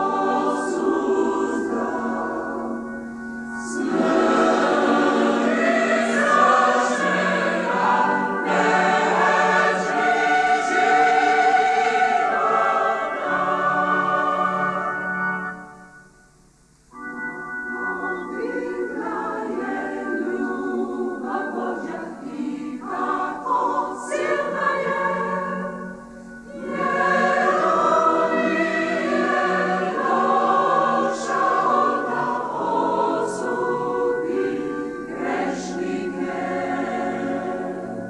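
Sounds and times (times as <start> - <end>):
mixed choir singing a hymn: 0.0 - 15.7, 17.7 - 38.0.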